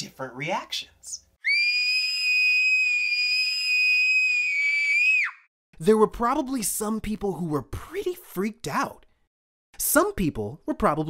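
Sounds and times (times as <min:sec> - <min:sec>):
girl screaming: 0:01.4 - 0:05.5.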